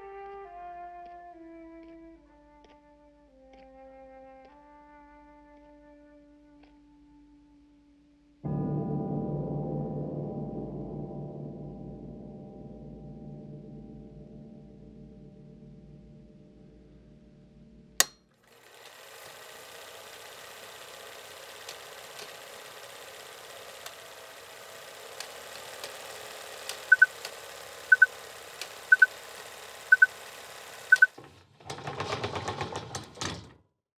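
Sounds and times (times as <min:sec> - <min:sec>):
film projector whirring: 0:18.4 - 0:33.4
short beeps: 0:26.9 - 0:27.1, 0:27.9 - 0:28.1, 0:28.9 - 0:29.1, 0:29.9 - 0:30.1, 0:30.9 - 0:31.2.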